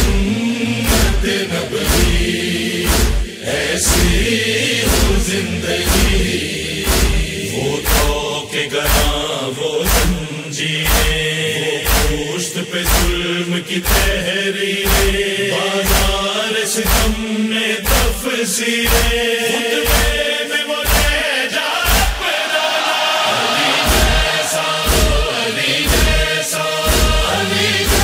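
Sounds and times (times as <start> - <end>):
male chorus chanting: 0.0 - 28.0
chest-beating: 2.8 - 4.2, 6.8 - 7.3, 12.8 - 13.2.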